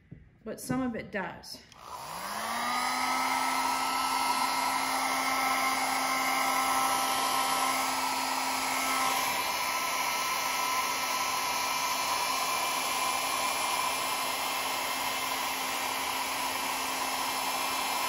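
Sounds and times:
hair dryer blowing: 0:01.7 - 0:18.0.

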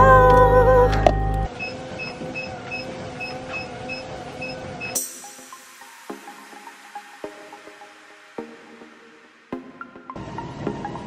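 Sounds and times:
music: 0:00.0 - 0:01.5, 0:05.0 - 0:11.0
car door warning beeps: 0:01.1 - 0:05.0.

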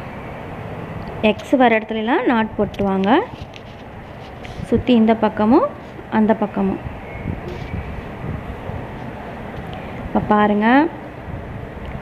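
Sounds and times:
low background rumble: 0:03.9 - 0:12.0.

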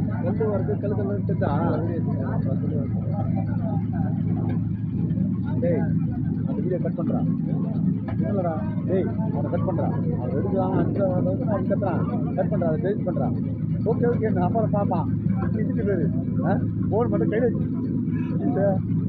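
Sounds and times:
men talking and calling out: 0:00.0 - 0:19.0.

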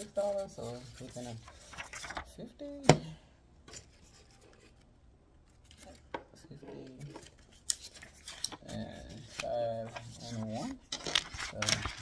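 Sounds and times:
paper bills rustling and snapping: 0:00.6 - 0:02.3, 0:06.9 - 0:12.0.

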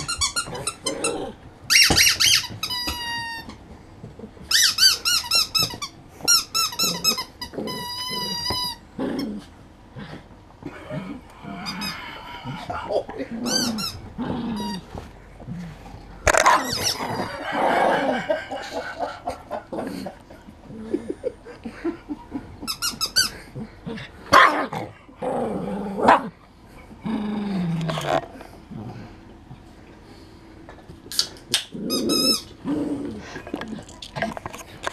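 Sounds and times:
dog growling: 0:00.4 - 0:01.4, 0:06.7 - 0:22.5, 0:23.3 - 0:29.3, 0:31.7 - 0:34.9
dog barking: 0:24.3 - 0:24.7.

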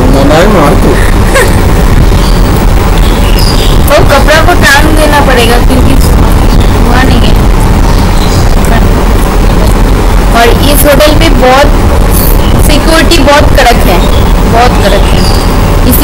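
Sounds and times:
person speaking: 0:00.0 - 0:01.6
loud low rumble: 0:00.0 - 0:16.0.

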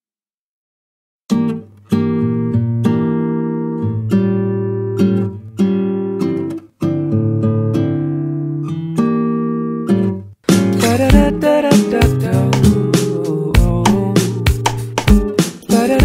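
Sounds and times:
acoustic guitar chords: 0:01.3 - 0:16.0.

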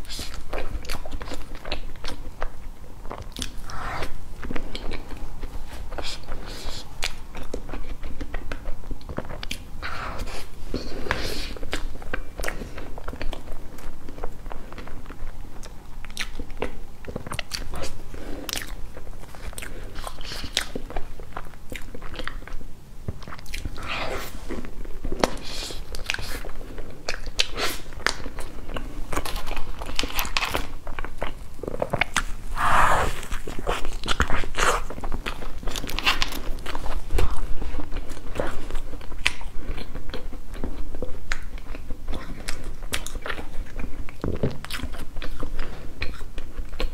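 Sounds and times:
wet chewing and smacking: 0:00.0 - 0:46.9.

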